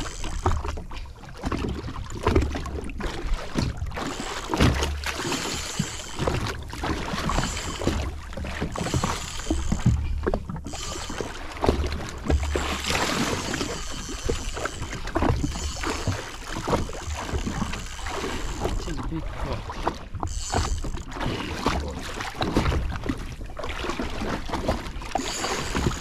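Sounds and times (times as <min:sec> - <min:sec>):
water lapping against hull: 0:00.0 - 0:26.0.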